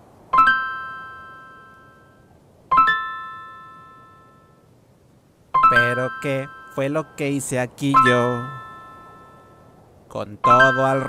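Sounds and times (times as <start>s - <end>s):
piano chord ringing: 0.3s - 4.7s, 5.6s - 9.8s.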